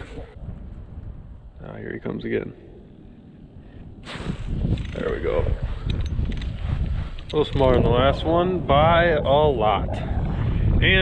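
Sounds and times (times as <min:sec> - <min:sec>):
wind noise on microphone: 0:00.0 - 0:11.0
rustling on microphone: 0:04.0 - 0:08.0.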